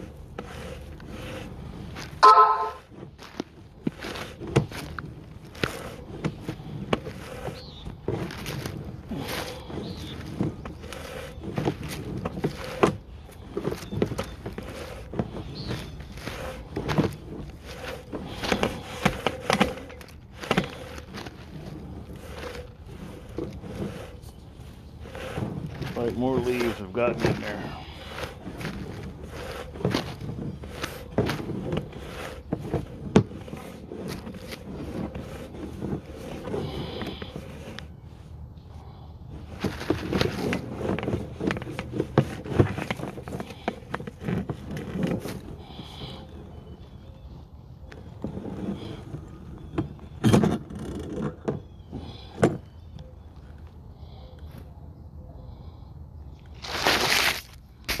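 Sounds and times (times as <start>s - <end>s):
loud scraping rush: 0.0s - 46.5s
cable scraping and clicking: 0.0s - 47.1s, 47.8s - 53.8s.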